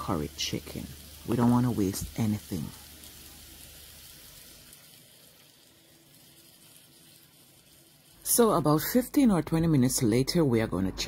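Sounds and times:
chicken sizzling in frying pan: 0.0 - 9.5.

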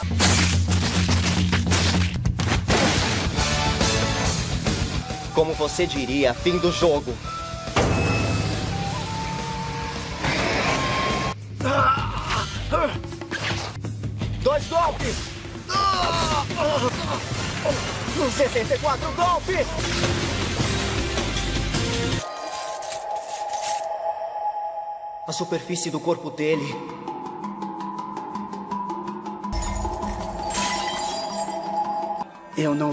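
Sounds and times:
background music: 0.0 - 32.9
sudden hit: 7.8 - 9.0.

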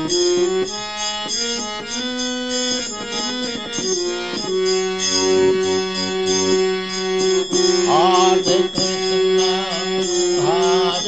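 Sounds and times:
held drone: 0.0 - 11.0
person singing gliding phrases: 7.9 - 11.0.

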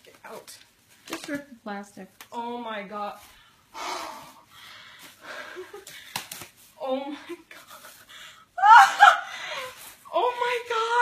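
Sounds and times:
sharp snaps: 5.8 - 6.6.

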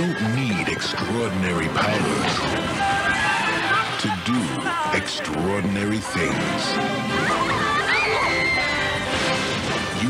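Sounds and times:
trailer music: 0.2 - 10.0
crash: 9.1 - 10.0.

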